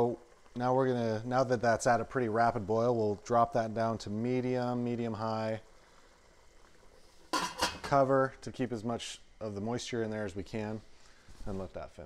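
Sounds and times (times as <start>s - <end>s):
metal lid clattering onto pot: 7.3s - 8.0s.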